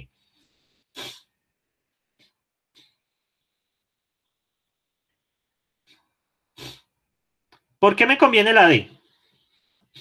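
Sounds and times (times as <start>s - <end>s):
short breath or sniff: 0.3s - 1.3s, 6.6s - 6.9s.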